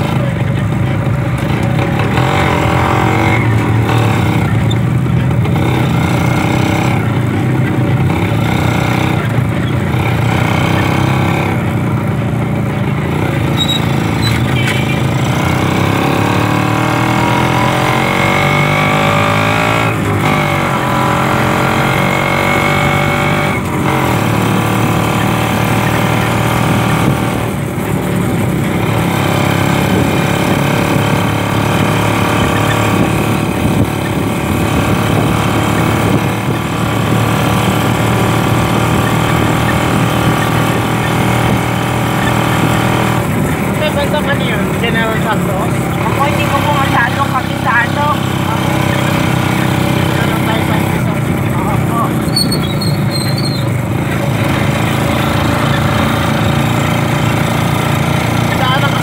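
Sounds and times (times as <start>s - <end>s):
motorcycle engine accelerating: 0.0s - 59.0s.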